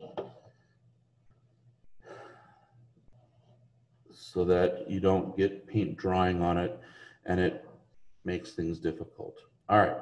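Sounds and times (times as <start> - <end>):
faint low hum: 0.0 - 10.0
person breathing out: 2.0 - 2.7.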